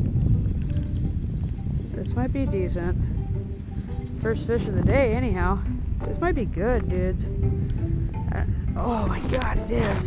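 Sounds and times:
faint music: 0.0s - 10.0s
wind rumbling on microphone: 0.0s - 10.0s
light high ticks: 0.2s - 2.2s, 5.6s - 8.4s.

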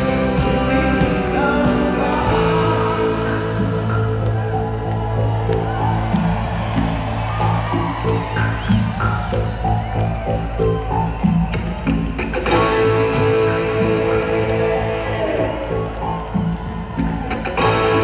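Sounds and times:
rock band playing: 0.0s - 18.0s.

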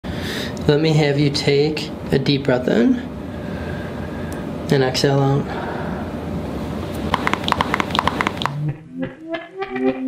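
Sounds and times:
spine popping: 7.0s - 10.0s.

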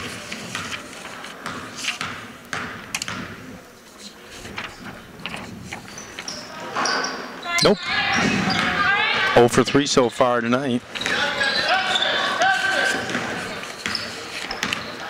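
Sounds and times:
crowd noise and voices: 0.0s - 15.0s
basketball bouncing on hardwood floor: 1.4s - 3.4s.

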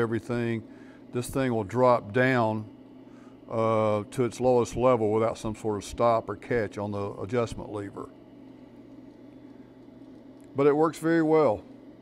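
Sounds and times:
laser cutter machinery hum: 0.0s - 12.0s.

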